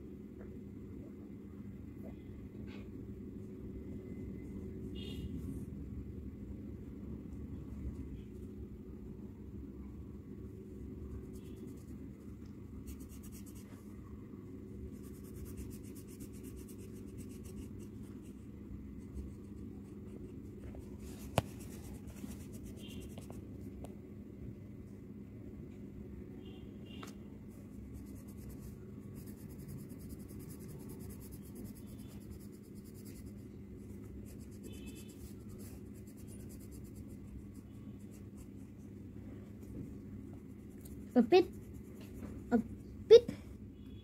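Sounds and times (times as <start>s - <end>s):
steady low hum: 0.0s - 44.0s
pencil scratching on paper: 12.8s - 13.8s, 14.9s - 23.4s, 27.8s - 38.7s.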